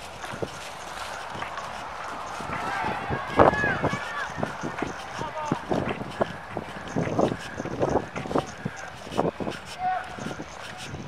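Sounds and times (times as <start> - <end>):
footsteps on asphalt: 0.0 - 11.0
indistinct voices: 0.0 - 11.0.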